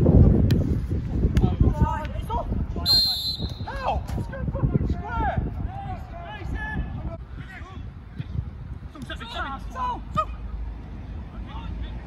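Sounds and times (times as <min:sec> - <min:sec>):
wind rumbling on microphone: 0:00.0 - 0:09.2.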